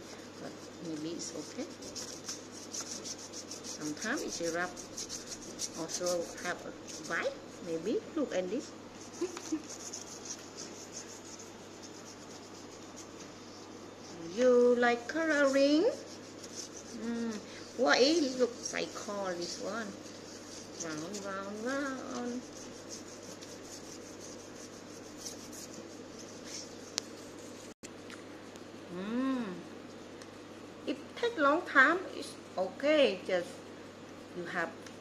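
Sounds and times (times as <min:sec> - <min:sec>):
crayon scribbling on paper: 0:00.0 - 0:07.4, 0:09.0 - 0:27.7.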